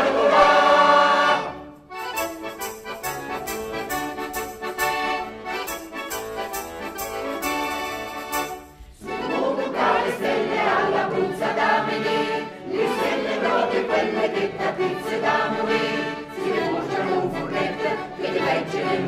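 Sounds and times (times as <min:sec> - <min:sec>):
mixed choir singing folk song: 0:00.0 - 0:01.8, 0:08.8 - 0:19.0.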